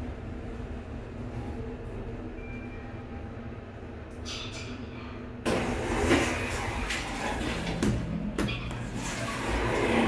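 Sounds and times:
elevator doors sliding open: 5.5 - 7.7, 8.8 - 10.0.

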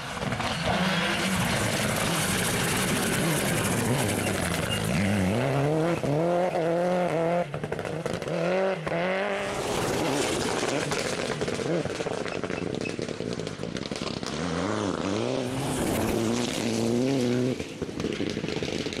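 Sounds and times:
gravel and tyre noise: 0.0 - 19.0
rally car engine at full throttle: 0.0 - 19.0.

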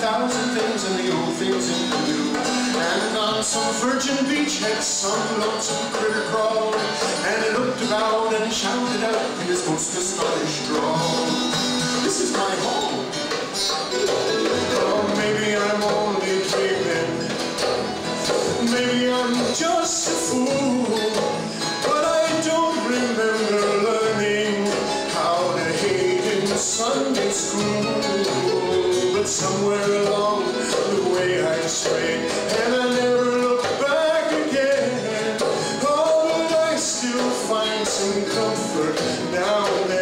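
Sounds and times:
acoustic guitar strumming: 0.0 - 40.0
hand drum rhythm: 0.0 - 40.0
man singing: 0.0 - 40.0.

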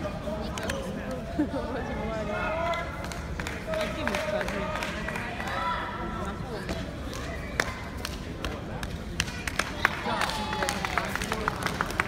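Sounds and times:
people talking in a large hall: 0.0 - 12.0.

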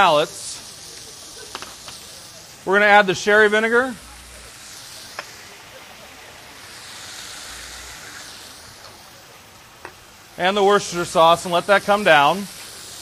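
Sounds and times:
pans sizzling: 0.0 - 13.0.

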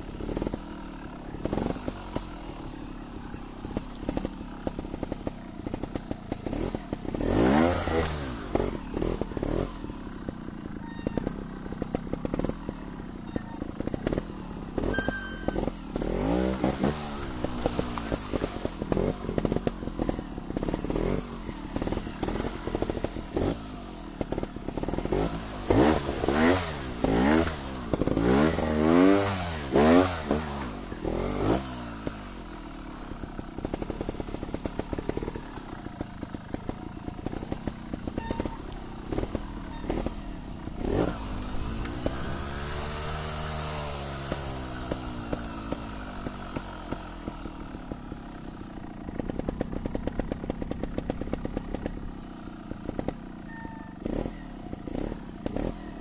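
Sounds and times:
motorcycle engine revving: 0.0 - 56.0
bike knocks and clatter: 3.7 - 21.2.

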